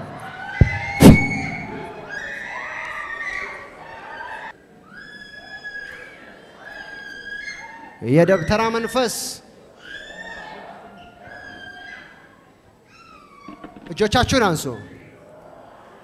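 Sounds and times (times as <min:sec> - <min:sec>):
crowd crying out and wailing: 0:00.0 - 0:08.9
loud thump: 0:00.6 - 0:02.1.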